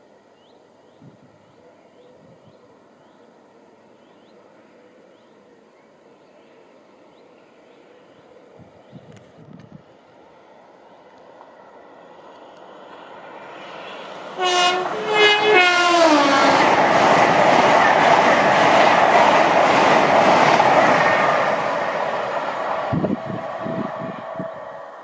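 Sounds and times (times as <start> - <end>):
train rushing past: 11.3 - 25.0
train horn blasts: 14.4 - 16.7, 22.9 - 25.0.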